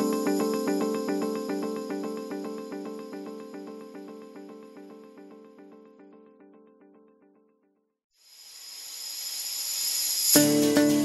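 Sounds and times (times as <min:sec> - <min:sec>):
music: 0:00.0 - 0:08.0, 0:10.3 - 0:11.0.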